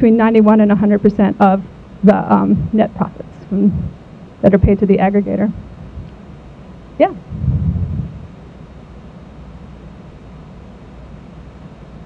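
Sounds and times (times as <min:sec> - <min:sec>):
short low muffled sound: 0:07.1 - 0:08.4.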